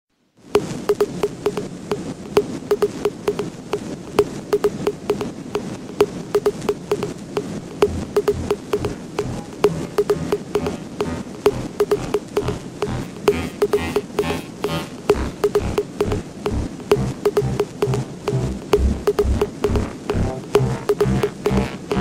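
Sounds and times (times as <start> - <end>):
clicking percussion music: 0.6 - 22.0
low beat: 0.6 - 22.0.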